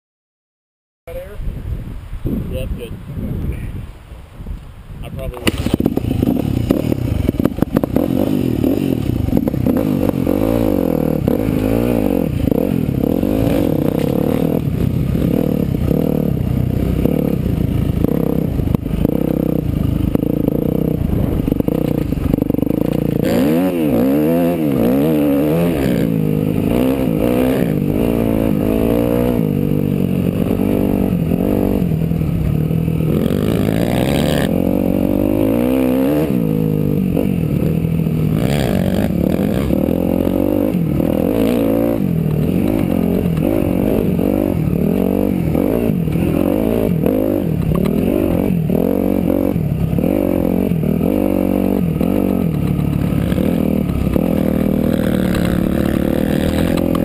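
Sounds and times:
dirt bike engine revving: 5.4 - 57.0.

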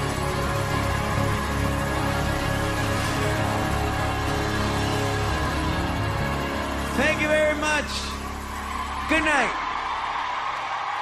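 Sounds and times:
audience cheering: 0.0 - 11.0
man calling into a microphone: 6.9 - 8.2, 9.1 - 9.6.

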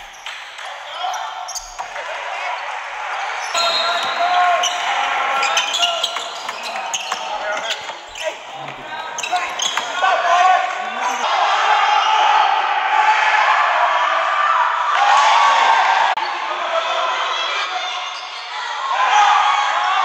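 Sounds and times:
voices of players and spectators: 0.0 - 20.0.

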